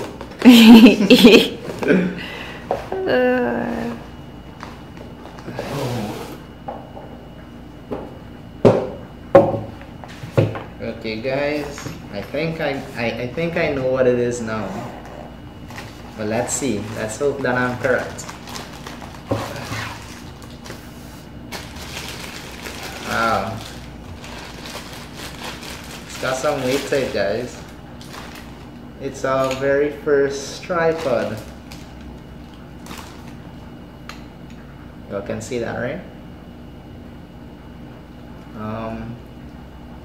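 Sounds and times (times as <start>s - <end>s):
plastic rustling: 15.5s - 29.6s, 30.6s - 33.6s.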